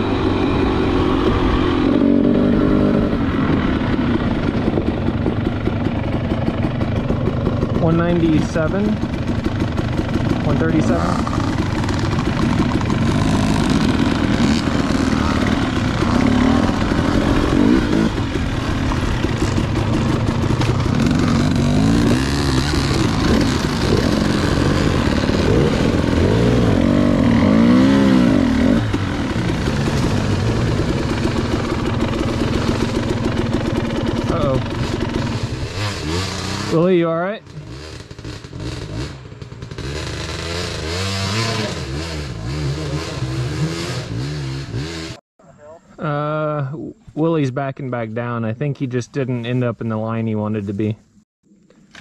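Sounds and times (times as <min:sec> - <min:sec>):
dirt bike engines revving: 0:00.0 - 0:45.2.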